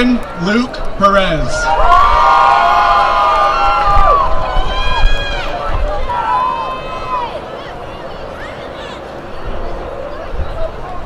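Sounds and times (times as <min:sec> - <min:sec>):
audience cheering: 0:00.4 - 0:07.8
high whoops: 0:01.6 - 0:07.4.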